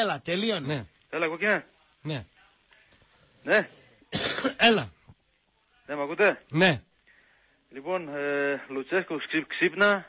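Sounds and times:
man clearing throat: 4.1s - 4.9s.

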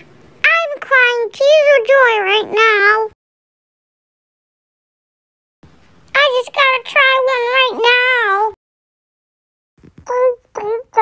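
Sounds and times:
high-pitched voice singing wordlessly: 10.0s - 11.0s.

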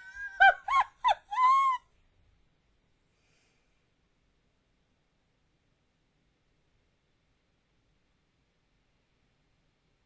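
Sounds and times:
woman laughing high-pitched: 0.0s - 1.9s.

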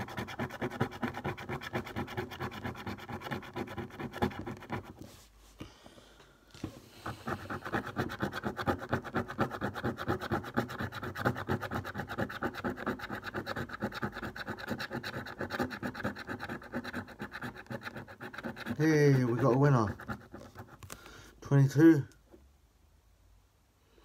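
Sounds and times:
scratchcard being scratched: 0.0s - 5.0s, 7.0s - 20.9s.

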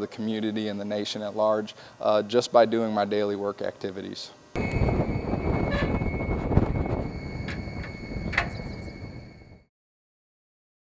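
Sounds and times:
steady low rumble: 4.6s - 9.6s
steel door unlatched and opened: 7.4s - 8.9s.

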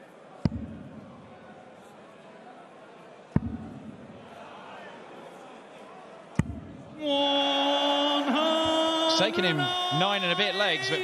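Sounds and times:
low arena murmur: 0.0s - 11.0s
long held score call voice: 7.0s - 11.0s.

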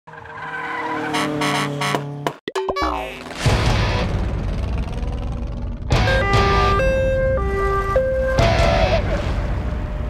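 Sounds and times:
falling tyre screech glide: 0.1s - 1.8s
loud low engine: 3.5s - 6.8s
held music chords: 5.9s - 9.1s.

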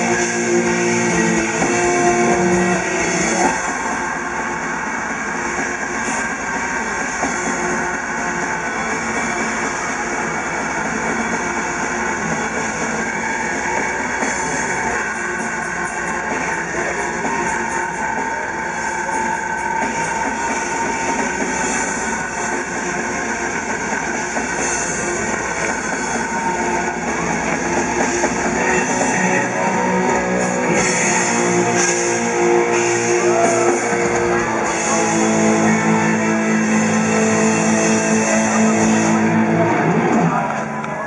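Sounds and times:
distorted guitars: 0.0s - 41.0s
drums: 0.0s - 41.0s.

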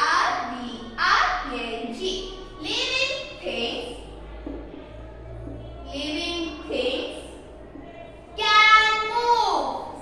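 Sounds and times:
child sing-song chanting: 0.0s - 10.0s.

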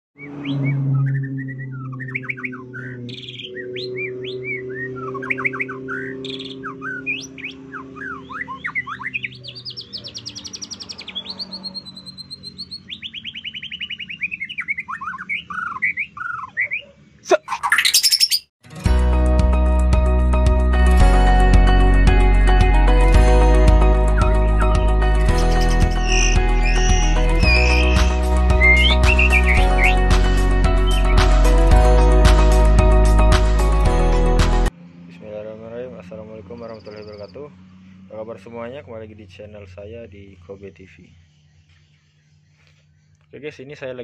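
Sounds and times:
bird singing whistles and trills: 0.2s - 16.9s, 17.5s - 18.5s, 24.1s - 30.1s, 30.8s - 31.3s, 36.6s - 37.5s
music: 18.6s - 34.7s.

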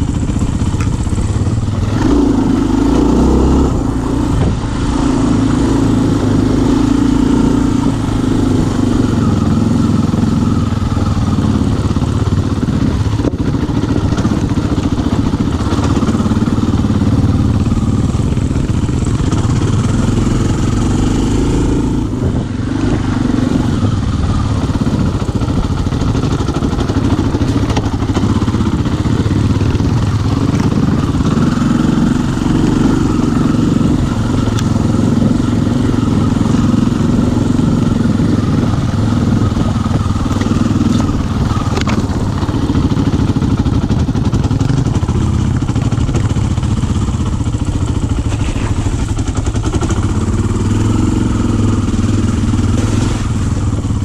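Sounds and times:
bike knocking and rattling: 0.0s - 2.2s, 10.5s - 20.0s, 23.8s - 54.0s
dirt bike engine running: 0.0s - 54.0s.

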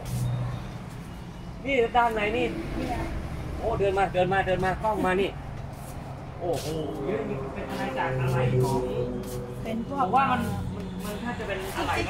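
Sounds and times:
road vehicle rumble: 0.0s - 12.0s
person talking: 6.4s - 11.2s.

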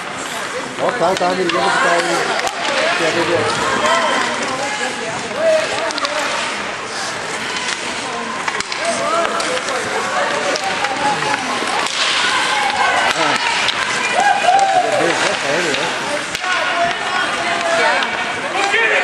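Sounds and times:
spectators calling and shouting: 0.0s - 19.0s
sharp knocks of sticks or puck: 5.5s - 6.5s, 8.5s - 9.8s, 10.4s - 14.0s, 15.1s - 18.8s
skates hissing on ice: 6.2s - 8.2s.

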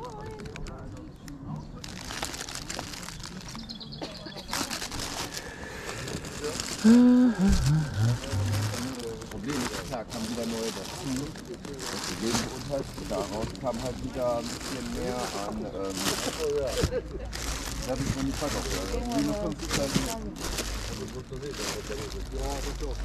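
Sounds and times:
plastic bags rustling and crinkling: 0.0s - 0.8s, 1.8s - 23.0s
background voices: 2.7s - 23.0s.

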